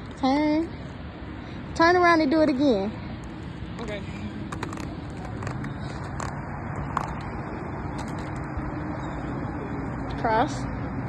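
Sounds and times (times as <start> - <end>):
skate wheels rolling on concrete: 0.0 - 9.7.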